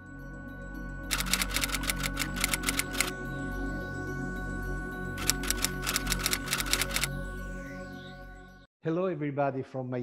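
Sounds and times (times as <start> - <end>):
ambient music pad: 0.0 - 8.7
typewriter keystrokes: 1.1 - 3.1, 5.2 - 7.1.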